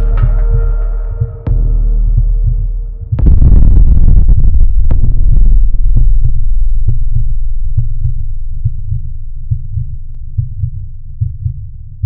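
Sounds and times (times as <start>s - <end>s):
throbbing low bass pulse: 0.0s - 12.0s.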